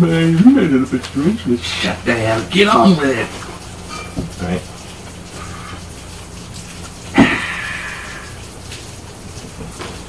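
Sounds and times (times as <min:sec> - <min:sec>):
background hiss: 0:00.0 - 0:09.8.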